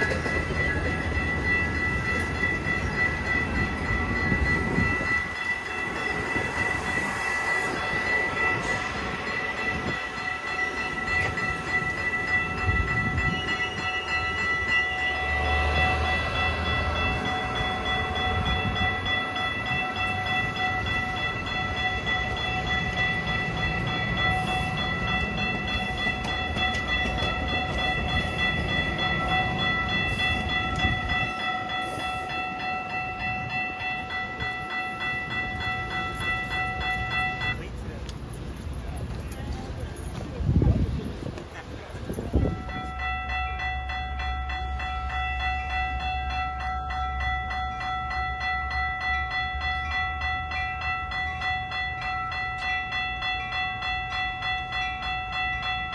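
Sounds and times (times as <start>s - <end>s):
train wheels rumbling on rails: 0.0s - 55.9s.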